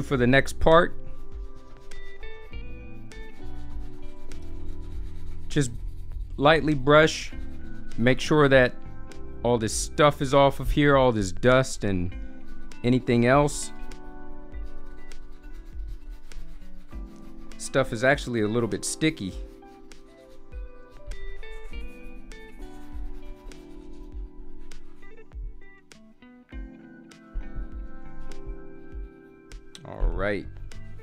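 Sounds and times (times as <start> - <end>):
background music: 0.0 - 31.0
shoe brush rubbing on leather: 1.3 - 6.3, 14.6 - 24.9.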